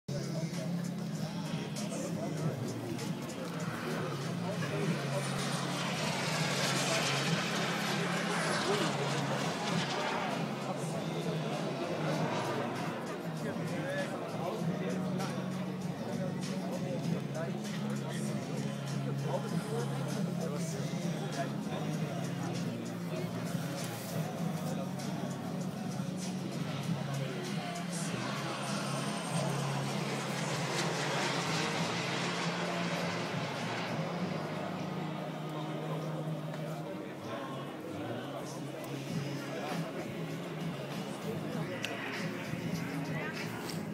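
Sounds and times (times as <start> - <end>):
high turbine whine: 0.1 - 43.9
jet roar passing: 0.3 - 37.0, 38.4 - 43.9.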